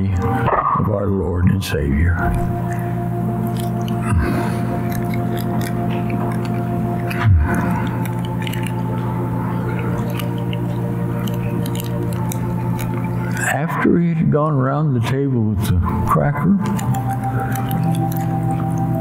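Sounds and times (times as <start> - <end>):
soft music with held chords: 0.0 - 19.0
cracker being chewed: 2.2 - 13.7, 16.4 - 19.0.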